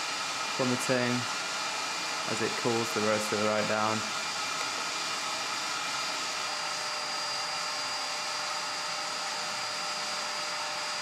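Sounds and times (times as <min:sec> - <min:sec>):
coffee roaster fan rushing: 0:00.0 - 0:11.0.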